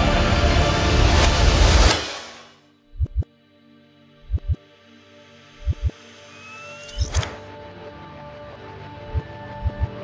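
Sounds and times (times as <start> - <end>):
deep heartbeat-like thumps: 3.0 - 3.3, 4.2 - 4.6, 5.6 - 5.9, 9.1 - 10.0
rising electronic whine: 4.2 - 4.6, 5.5 - 7.4.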